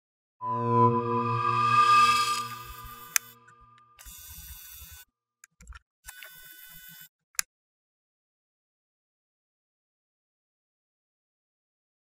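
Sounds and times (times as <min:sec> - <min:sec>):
synthesized chord: 0:00.4 - 0:03.2.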